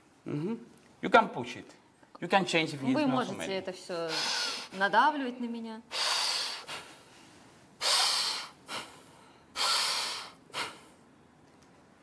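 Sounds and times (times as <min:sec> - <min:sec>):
man breathing forcefully: 0:04.1 - 0:04.8, 0:05.9 - 0:07.1, 0:07.8 - 0:11.0.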